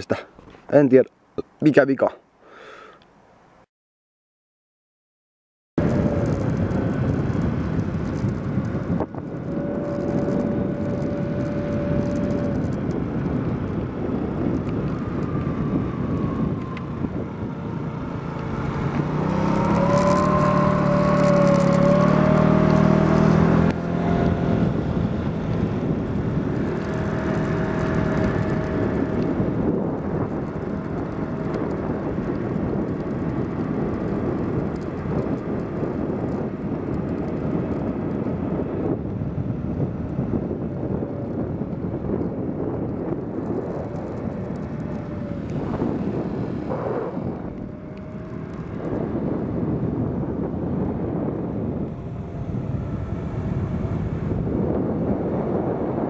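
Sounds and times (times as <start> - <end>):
moped engine running: 5.8 - 55.8
wind rush on microphone: 5.8 - 56.0.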